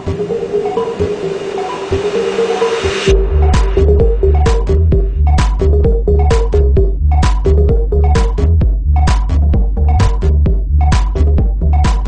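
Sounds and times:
white-noise sweep: 0.0s - 5.2s
repeating synth riff: 0.0s - 11.9s
kick drum and bass: 0.0s - 12.0s.

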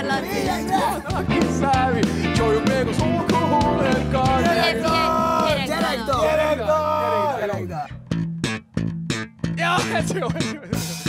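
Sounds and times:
electric guitars choppy stabs: 0.0s - 6.4s, 8.0s - 11.0s.

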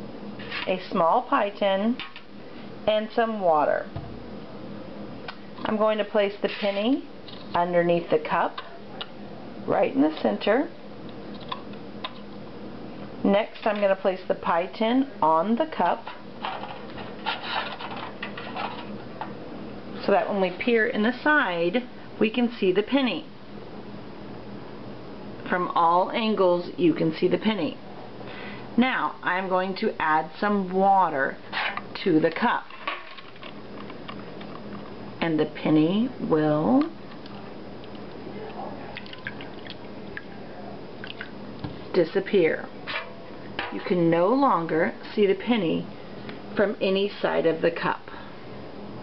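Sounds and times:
aluminium foil tin crinkling: 16.4s - 19.0s
small water drips: 37.1s - 40.3s, 41.0s - 41.4s
water pouring into plastic cup: 39.0s - 40.3s.

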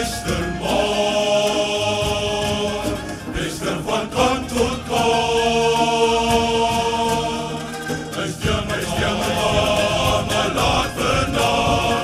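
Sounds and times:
choir singing: 0.0s - 12.0s
men singing: 0.0s - 12.0s
string band playing: 0.0s - 12.0s.

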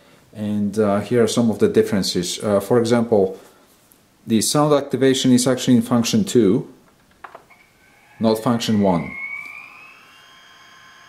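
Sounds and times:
rising electronic whine: 7.0s - 11.0s
high electronic tones: 7.2s - 11.0s.

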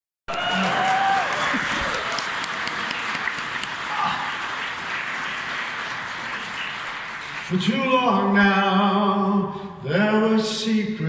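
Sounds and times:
audience applauding and cheering: 0.3s - 8.4s.

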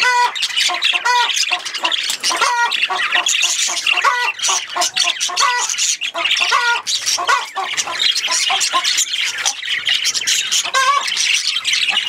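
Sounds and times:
budgerigars chattering: 0.0s - 12.0s.

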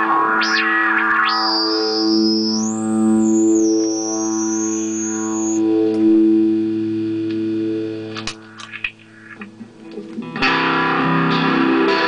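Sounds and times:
high whistling tone gliding: 0.0s - 6.4s
electric guitar drone: 0.0s - 12.0s.

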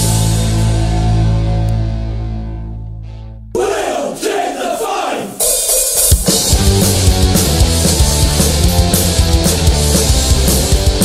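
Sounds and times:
punk rock band: 0.0s - 2.6s, 3.6s - 11.0s
male voices shouting in unison: 3.6s - 5.4s
cymbals and hi-hat: 5.3s - 11.0s.

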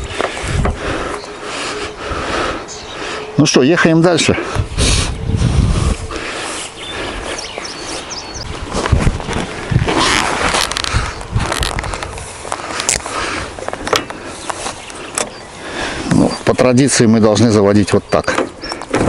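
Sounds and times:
rustling: 5.9s - 15.3s.

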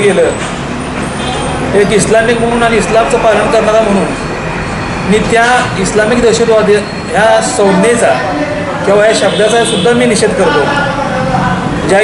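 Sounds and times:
steady background noise: 0.0s - 12.0s
man speaking: 1.7s - 4.3s, 5.0s - 12.0s.

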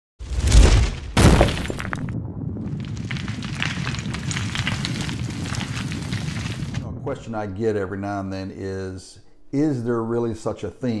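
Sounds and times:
crumbling crackle: 0.2s - 6.9s
stone cracking: 0.3s - 6.8s
deep boom: 0.6s - 4.8s.

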